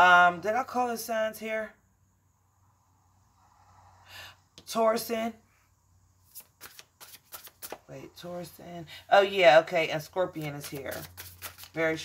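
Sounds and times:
cards being shuffled: 0:06.3 - 0:07.9, 0:10.4 - 0:12.0.

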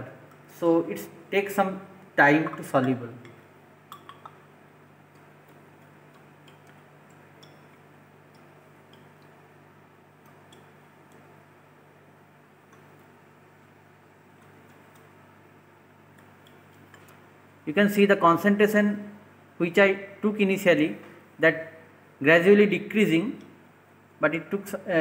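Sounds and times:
low ventilation hum: 0:00.0 - 0:25.0.

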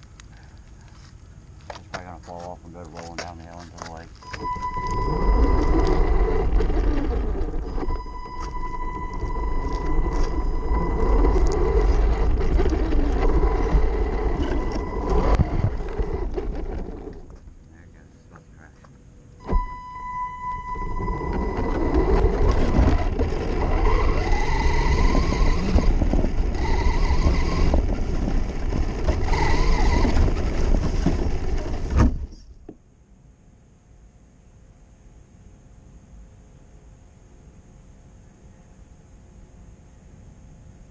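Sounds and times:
electric motor whine: 0:03.8 - 0:17.5, 0:19.4 - 0:32.3
rc truck chassis rattling: 0:04.3 - 0:17.5, 0:20.4 - 0:32.4.

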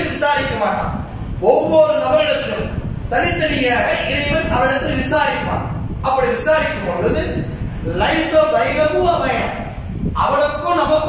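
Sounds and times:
man speaking into a microphone: 0:00.0 - 0:11.0.

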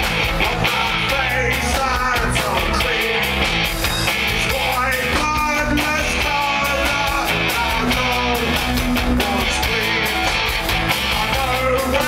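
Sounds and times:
bass guitar: 0:00.0 - 0:12.0
distorted electric guitar: 0:00.0 - 0:12.0
drums: 0:00.0 - 0:12.0.

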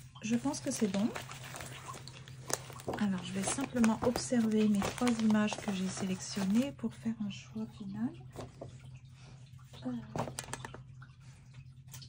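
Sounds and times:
paper rustling: 0:00.4 - 0:06.8.

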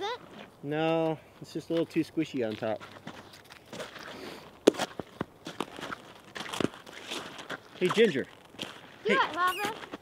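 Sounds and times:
footsteps crunching on snow: 0:02.3 - 0:10.0.

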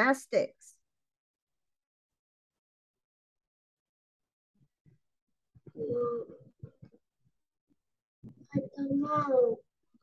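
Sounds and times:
child speaking over video call: 0:00.0 - 0:00.8, 0:08.3 - 0:10.0.

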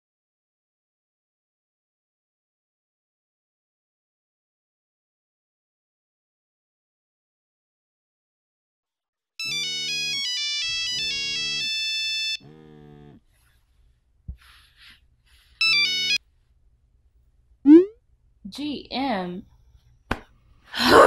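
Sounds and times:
phone vibration buzz: 0:09.4 - 0:13.3, 0:15.6 - 0:16.2
melodic phone ringtone chimes: 0:15.6 - 0:16.2.

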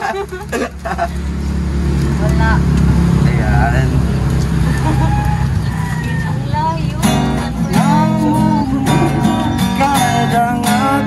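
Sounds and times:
vehicle engine idling: 0:00.0 - 0:11.0
faint voices: 0:02.2 - 0:11.0.

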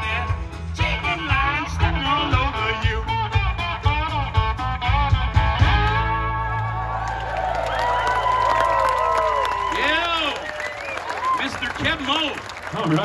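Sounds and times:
blues band playing: 0:00.0 - 0:09.3.

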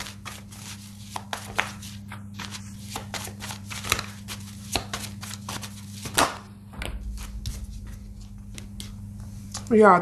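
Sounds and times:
cards being shuffled: 0:00.0 - 0:09.0
steady low hum: 0:00.0 - 0:10.0.

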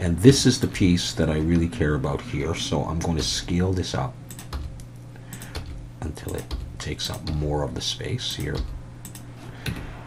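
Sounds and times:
low steady hum: 0:00.0 - 0:10.0
computer keyboard and mouse clicks: 0:04.3 - 0:07.5, 0:08.3 - 0:09.9.

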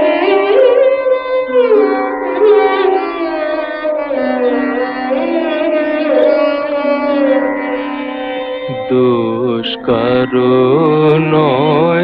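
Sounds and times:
devotional song with vibrato: 0:00.0 - 0:12.0
instrumental accompaniment: 0:00.0 - 0:12.0.

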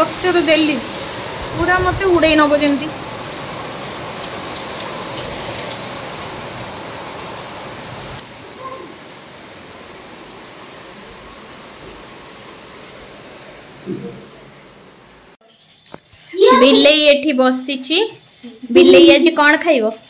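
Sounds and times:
heavy rain falling: 0:00.0 - 0:15.4.

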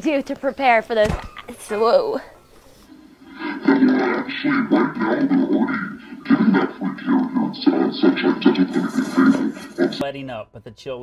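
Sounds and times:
woman talking: 0:00.0 - 0:02.4.

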